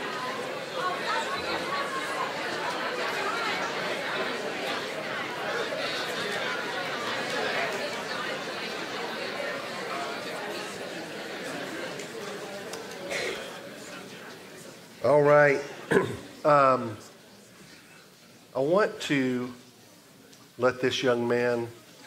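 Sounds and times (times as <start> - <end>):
murmur of overlapping conversation: 0.0 - 22.0.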